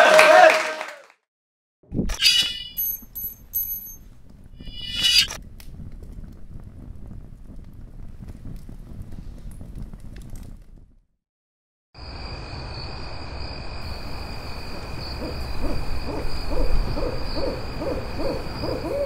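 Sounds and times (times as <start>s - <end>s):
low rumble: 4.1s - 11.0s
owl hooting: 14.7s - 19.0s.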